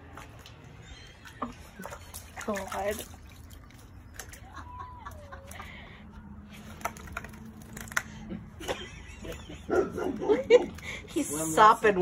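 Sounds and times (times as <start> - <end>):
puppy claws tapping on concrete: 6.7 - 8.2.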